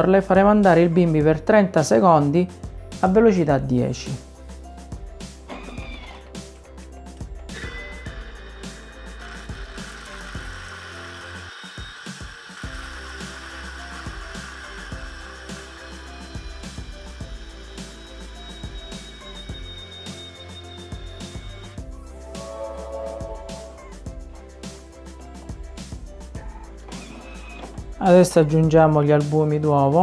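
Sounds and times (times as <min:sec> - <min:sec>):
food processor motor grinding: 0:05.5 - 0:06.4, 0:07.5 - 0:21.8, 0:26.4 - 0:27.9.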